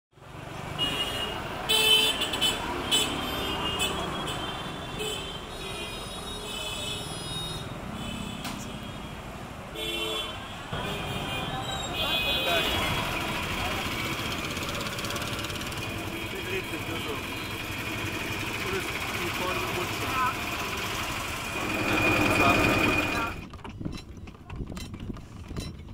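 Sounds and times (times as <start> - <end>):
vehicle horns honking: 0.8 - 14.3, 15.2 - 20.9
voices: 10.7 - 23.4
engines running: 12.6 - 23.5.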